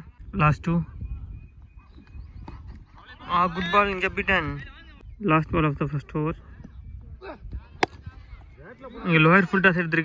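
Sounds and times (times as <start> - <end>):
faint distant voices: 6.0 - 9.6.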